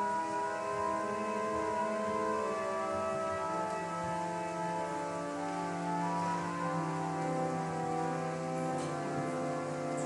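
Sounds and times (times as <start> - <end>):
church organ playing chords: 0.0 - 10.0.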